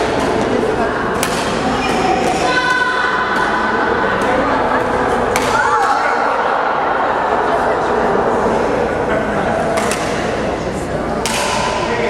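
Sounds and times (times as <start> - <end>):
rackets hitting shuttlecock: 0.0 - 4.4, 5.2 - 5.9, 9.7 - 10.5, 11.2 - 11.9
murmur of voices: 0.0 - 12.0.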